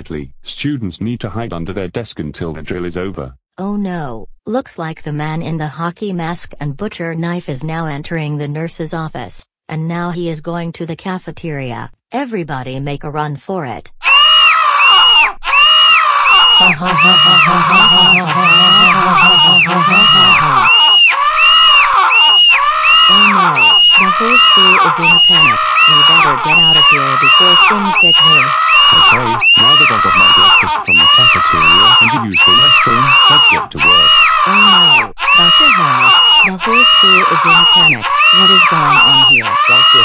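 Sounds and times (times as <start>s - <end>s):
looped high scream: 14.0s - 40.0s
person laughing: 16.4s - 21.0s, 23.1s - 40.0s.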